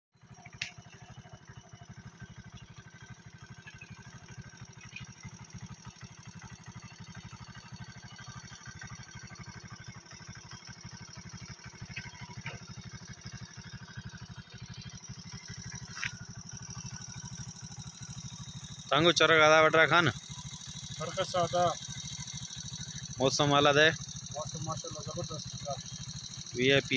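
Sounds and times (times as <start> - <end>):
small engine idling: 0.2 - 26.9.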